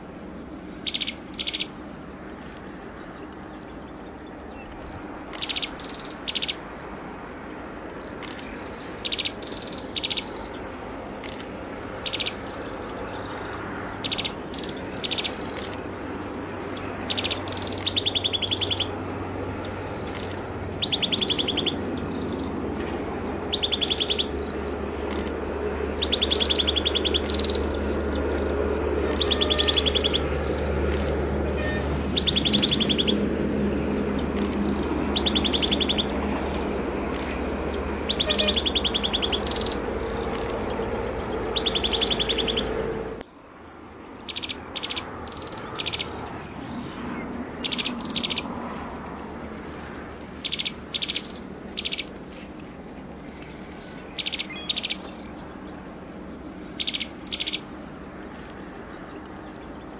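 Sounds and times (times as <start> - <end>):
bird chips and trills: 0.7 - 1.8, 4.5 - 6.6, 8.0 - 10.6, 12.0 - 12.4, 14.0 - 15.9, 16.8 - 19.0, 20.1 - 22.4, 23.5 - 24.5, 26.0 - 27.8, 29.1 - 30.3, 32.1 - 33.3, 34.4 - 36.2, 38.0 - 42.8, 44.3 - 46.2, 47.6 - 48.5, 50.4 - 52.5, 53.4 - 55.8, 56.6 - 57.7.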